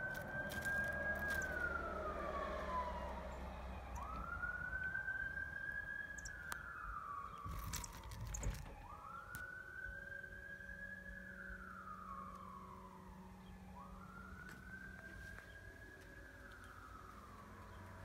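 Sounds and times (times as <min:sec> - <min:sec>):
siren wailing: 0:00.0 - 0:18.0.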